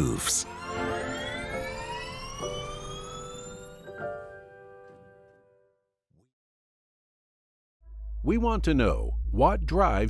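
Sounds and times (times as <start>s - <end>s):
electric motor whine rising: 0.0s - 5.1s.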